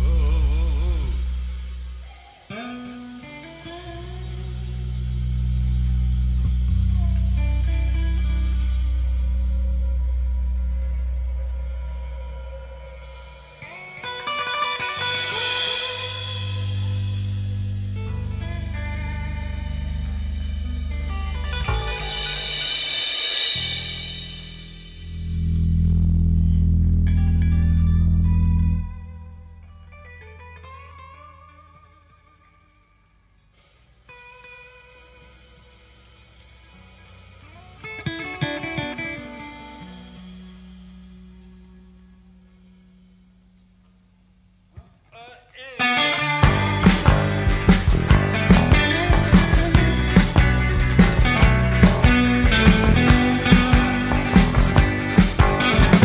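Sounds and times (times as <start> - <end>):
sustained low bass notes: 0.0 - 2.1, 3.4 - 14.2, 15.0 - 22.8, 23.4 - 31.1, 35.7 - 44.7, 46.4 - 56.0
electric guitar: 0.0 - 43.2, 45.8 - 56.0.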